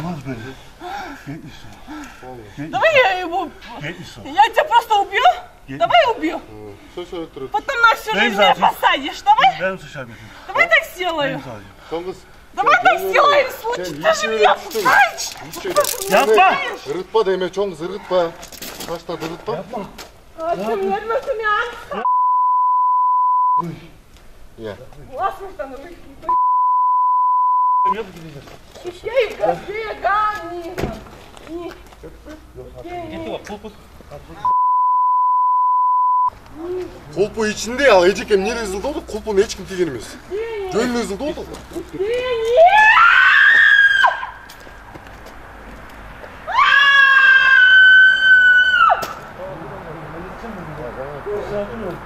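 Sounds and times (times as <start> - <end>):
censor bleeps: 22.0 - 23.6, 26.3 - 28.0, 34.4 - 36.3
woman screaming: 42.0 - 44.5, 46.5 - 49.1.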